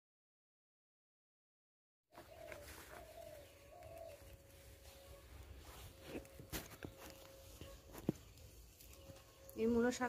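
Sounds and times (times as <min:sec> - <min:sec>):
bird calling faintly: 0:02.2 - 0:10.0.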